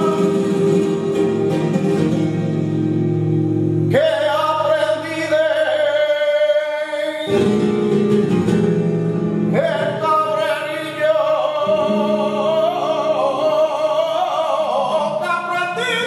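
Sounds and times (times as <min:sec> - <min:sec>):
man singing flamenco: 0:00.0 - 0:03.0, 0:03.6 - 0:16.0
guitar accompaniment: 0:00.0 - 0:16.0.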